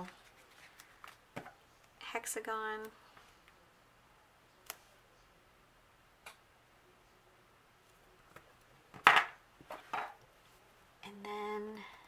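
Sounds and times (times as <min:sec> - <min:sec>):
small objects knocking on table: 0:09.0 - 0:10.2.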